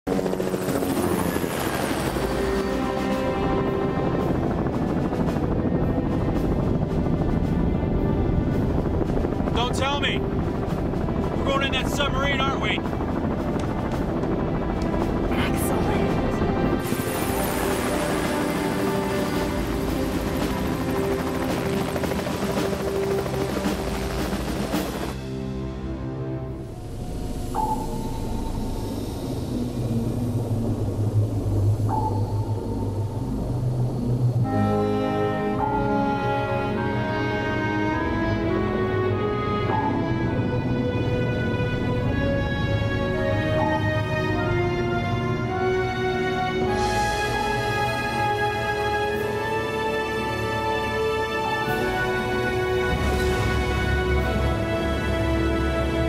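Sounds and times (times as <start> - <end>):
helicopter engine tone: 0.1 - 56.0
helicopter rotor beating: 0.1 - 56.0
background music score: 0.3 - 56.0.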